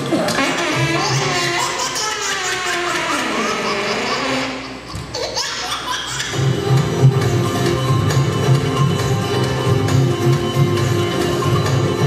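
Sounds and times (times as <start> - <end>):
voice sliding in pitch: 0.1 - 1.9
music with steady low beat: 6.4 - 12.0.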